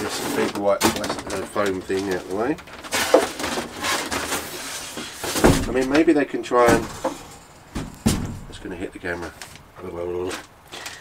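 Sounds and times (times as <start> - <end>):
foam scraping against cardboard: 1.8 - 5.7.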